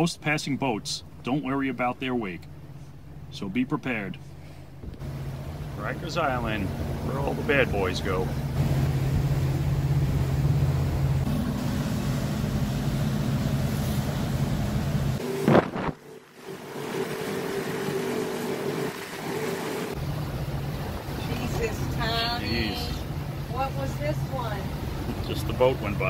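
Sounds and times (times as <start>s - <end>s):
boat engines droning: 0.0s - 26.0s
steady higher hum: 0.0s - 26.0s
water noise: 0.0s - 26.0s
wind: 0.0s - 26.0s.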